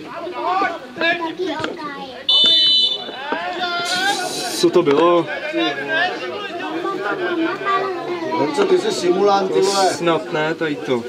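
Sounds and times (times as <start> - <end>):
players shouting: 2.2 - 10.0
referee's whistle long blast: 2.3 - 3.1.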